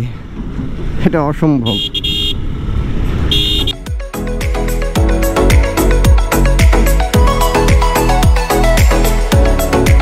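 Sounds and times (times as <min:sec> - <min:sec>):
motorcycle engine and road noise: 0:00.0 - 0:04.2
high-pitched vehicle horn: 0:01.7 - 0:02.5, 0:03.3 - 0:03.9
music with a beat: 0:03.8 - 0:10.0.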